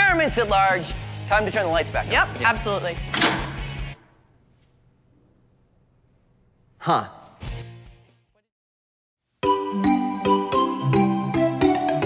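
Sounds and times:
background music: 0.0s - 4.2s, 9.4s - 12.0s.

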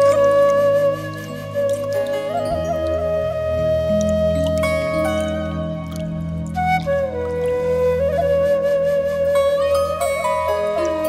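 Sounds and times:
bamboo flute long note: 0.0s - 11.0s.

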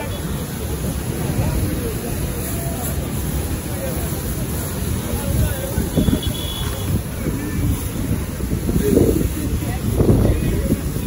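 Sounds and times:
hose spraying water on car: 0.0s - 11.0s
voices murmuring: 0.0s - 11.0s.

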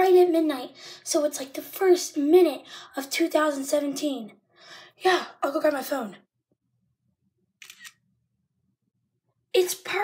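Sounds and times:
camera shutter click: 7.6s - 8.0s.

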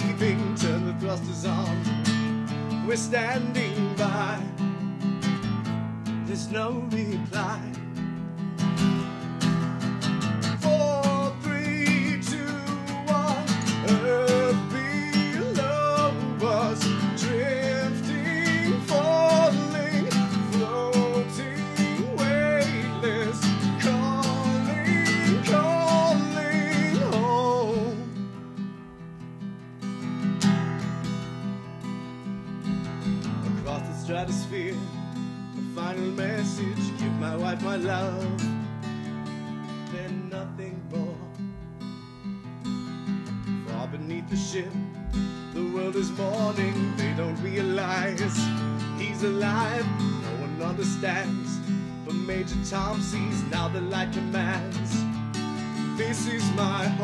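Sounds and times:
wordless vocal melody: 0.0s - 5.5s, 9.0s - 28.6s, 32.3s - 41.7s, 43.4s - 57.0s
acoustic guitar strumming: 0.0s - 57.0s.

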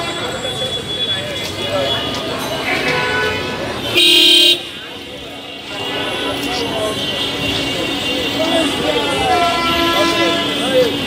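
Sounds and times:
busy street noise: 0.0s - 11.0s
voices of passers-by: 0.0s - 11.0s
vehicle horn honking: 1.8s - 4.8s, 5.5s - 11.0s.

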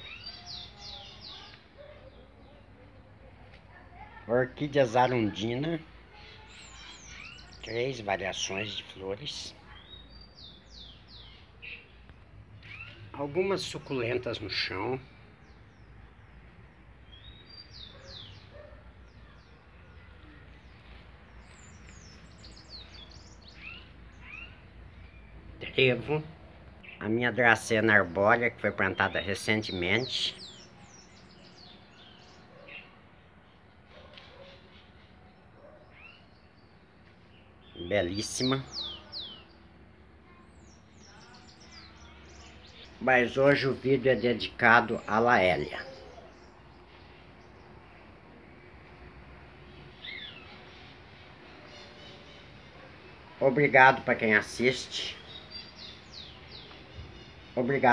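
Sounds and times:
faint high bird chirps: 0.0s - 2.7s, 6.1s - 7.9s, 9.6s - 13.3s, 17.1s - 25.4s
small birds chirping: 0.0s - 57.9s.

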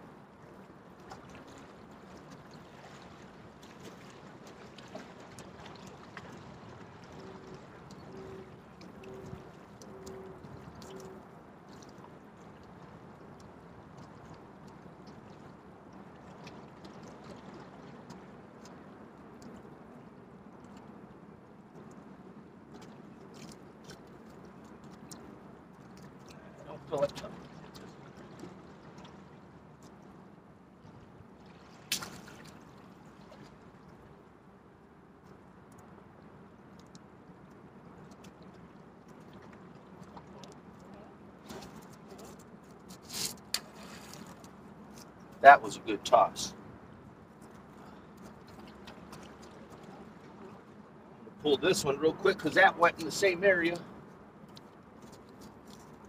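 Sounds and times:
water lapping on rocks: 0.0s - 19.8s, 21.7s - 34.4s, 35.2s - 46.6s, 47.3s - 56.0s
outdoor air noise: 0.0s - 56.0s.

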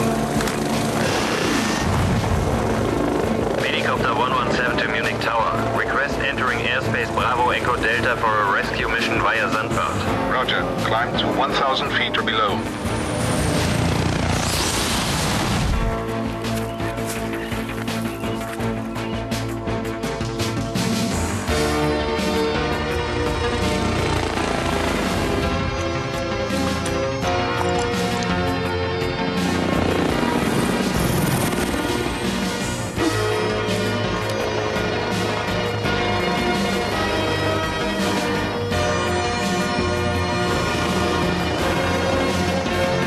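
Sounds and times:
helicopter rotor and engine: 0.0s - 43.0s.

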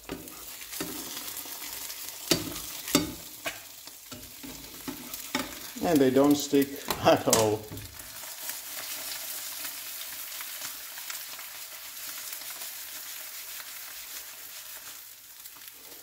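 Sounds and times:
eggs sizzling in oil: 0.0s - 16.0s.

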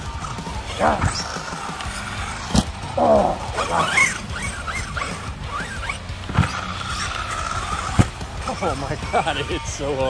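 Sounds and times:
electric toy car motor whining: 0.0s - 10.0s.

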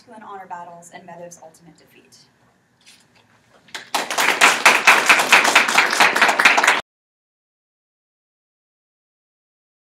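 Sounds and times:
audience applauding: 3.7s - 6.8s.

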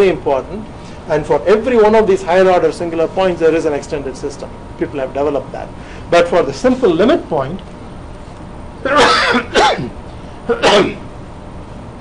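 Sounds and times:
man coughing: 8.8s - 11.0s.

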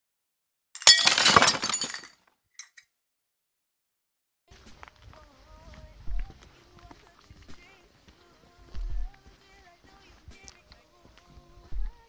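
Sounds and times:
glass pieces tinkling: 0.8s - 2.8s
glass shattering: 0.8s - 2.8s
small glass clinks: 0.8s - 2.8s.

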